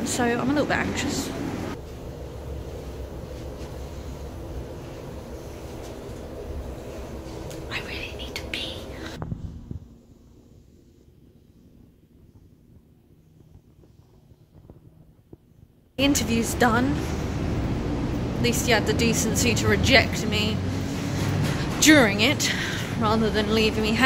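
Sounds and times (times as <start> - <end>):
woman whispering: 7.6 - 9.2
lift car hum: 16.0 - 24.0.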